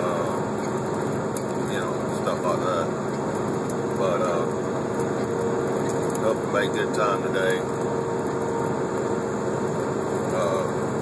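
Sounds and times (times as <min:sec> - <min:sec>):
truck engine and road noise: 0:00.0 - 0:11.0.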